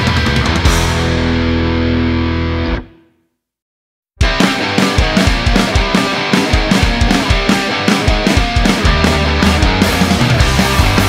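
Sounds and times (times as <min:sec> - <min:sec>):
bass guitar ringing: 0:00.0 - 0:03.0, 0:04.2 - 0:11.0
distorted electric guitar chord: 0:00.0 - 0:03.0, 0:04.2 - 0:11.0.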